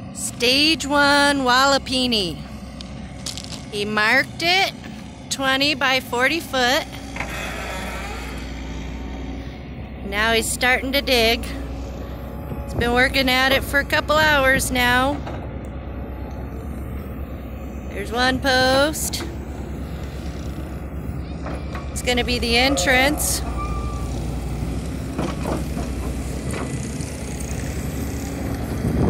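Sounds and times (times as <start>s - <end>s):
backhoe engine running: 0.0s - 29.0s.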